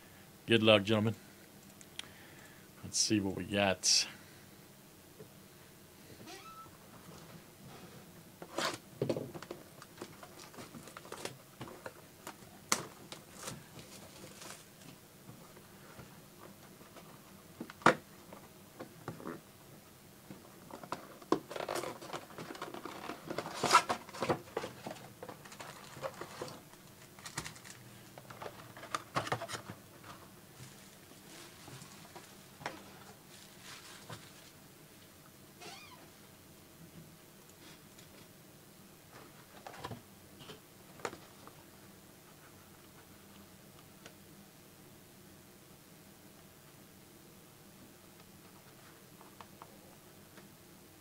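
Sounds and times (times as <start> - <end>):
foil wrappers crinkling: 25.3 - 27.8.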